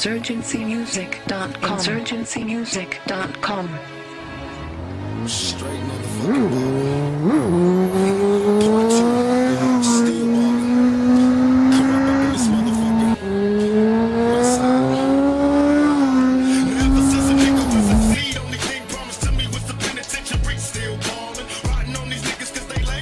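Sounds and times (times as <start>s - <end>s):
motorcycle engine accelerating: 4.2s - 18.2s.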